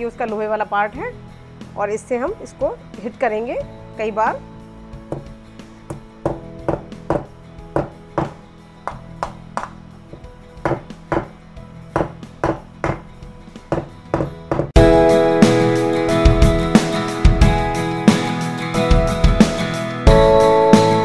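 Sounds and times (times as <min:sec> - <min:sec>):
background music: 0:00.0 - 0:21.0.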